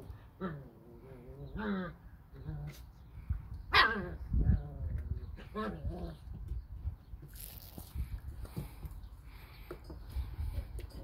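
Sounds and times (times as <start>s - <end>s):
puppies barking: 3.7s - 4.2s.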